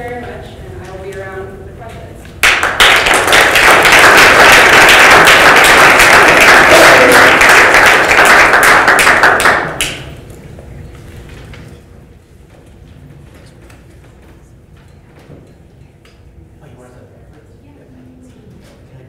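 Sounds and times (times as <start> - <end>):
audience applauding: 2.4 - 10.1.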